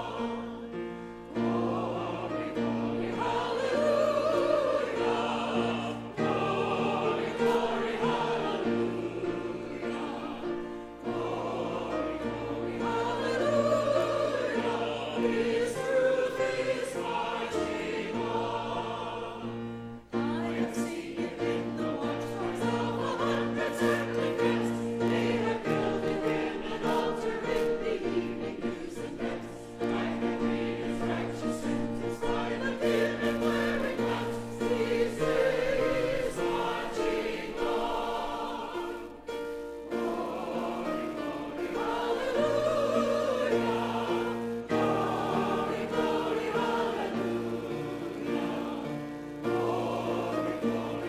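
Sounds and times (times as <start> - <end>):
choir singing: 0.0 - 51.0.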